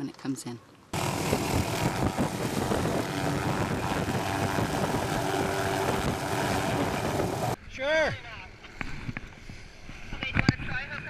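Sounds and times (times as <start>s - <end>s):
helicopter engine whine: 1.0s - 7.6s
helicopter rotor chop: 1.0s - 7.6s.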